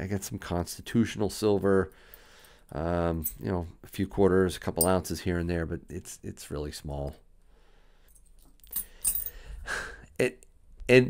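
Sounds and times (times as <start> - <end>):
person breathing: 1.9 - 2.7, 7.5 - 10.2
coins laid on cloth: 8.1 - 9.4.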